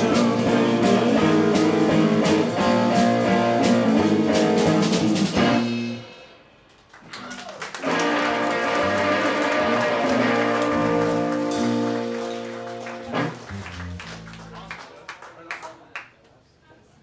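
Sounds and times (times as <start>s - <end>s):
electric guitar chords: 0.0s - 6.4s, 7.8s - 14.7s.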